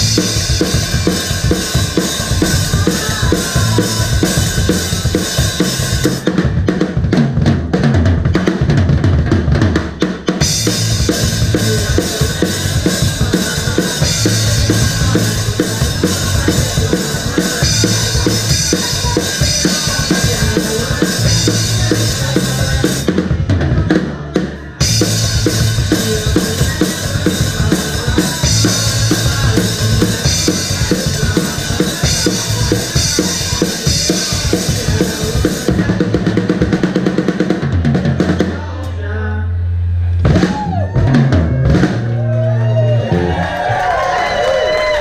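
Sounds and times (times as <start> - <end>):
bass guitar: 0.0 - 45.0
drums: 0.0 - 45.0.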